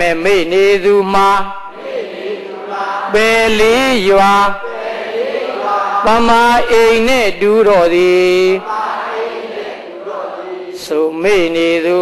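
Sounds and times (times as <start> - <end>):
monk chanting: 0.0 - 12.0.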